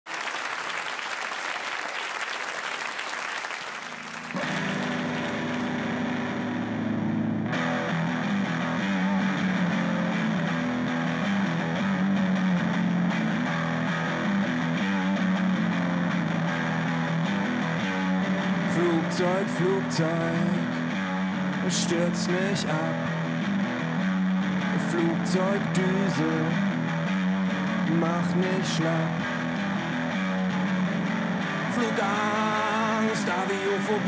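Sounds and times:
audience applause: 0:00.0 - 0:06.0
electric guitar rock riff: 0:03.8 - 0:34.0.

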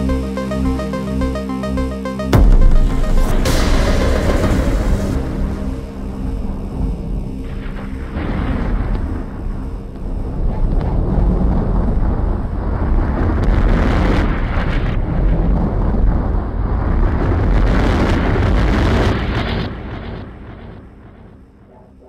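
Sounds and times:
electronic music with heavy bass: 0:00.0 - 0:12.2.

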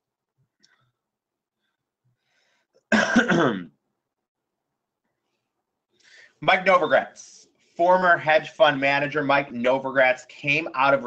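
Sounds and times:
man clearing his throat: 0:02.9 - 0:03.8.

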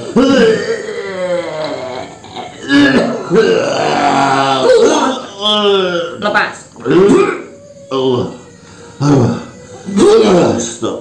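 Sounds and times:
man belching and groaning: 0:00.0 - 0:06.1, 0:06.9 - 0:07.5.

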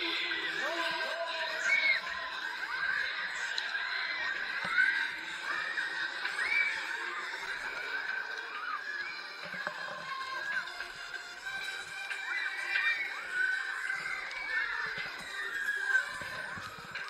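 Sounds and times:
fairground ride music: 0:00.0 - 0:17.0
riders screaming and whooping: 0:00.0 - 0:17.0.

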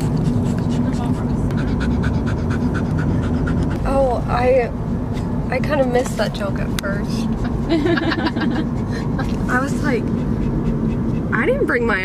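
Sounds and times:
dog panting: 0:00.0 - 0:04.2, 0:08.6 - 0:12.0
car cabin running noise: 0:00.0 - 0:12.0.

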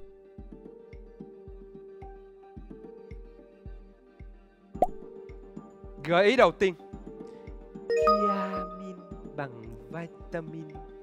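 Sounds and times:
quiz show thinking music: 0:04.9 - 0:11.0.

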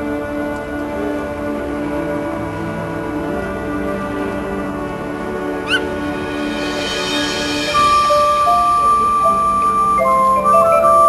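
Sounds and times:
marching band sustained chords: 0:00.0 - 0:11.0.

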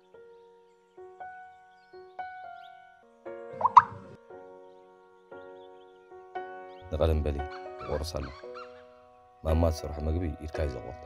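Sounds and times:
soft slow background music: 0:00.0 - 0:11.0
rising plop sound effect: 0:03.6 - 0:04.1.

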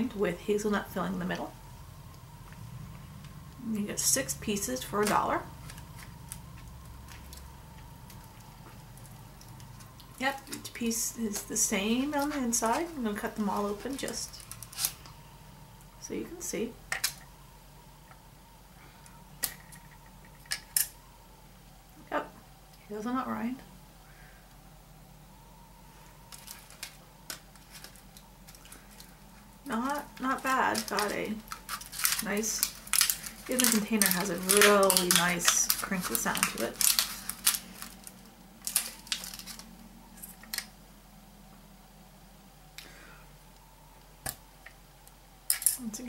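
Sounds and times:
plastic tray crinkling: 0:29.7 - 0:40.7.

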